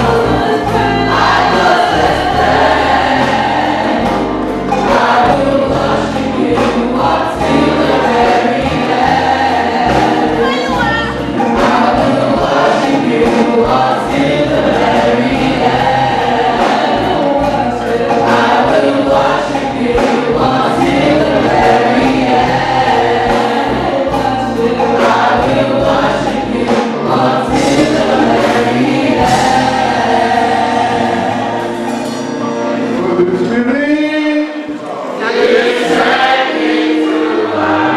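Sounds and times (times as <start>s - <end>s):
choir singing a gospel hymn: 0.0s - 37.9s.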